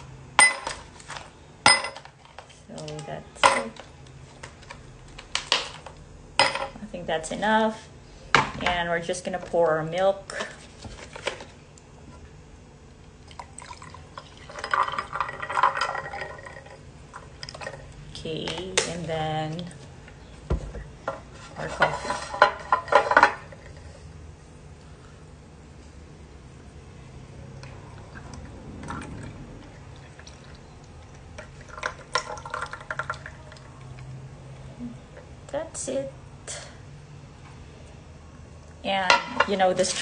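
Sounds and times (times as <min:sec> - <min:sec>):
coffee trickling into glass: 0:13.2 - 0:17.9, 0:27.8 - 0:34.1
milk pouring over ice: 0:13.2 - 0:17.9, 0:27.7 - 0:34.1.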